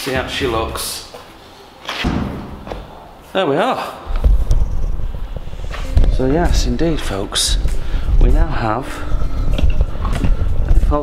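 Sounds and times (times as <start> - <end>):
metal plate landing with thud: 2.0 - 2.9.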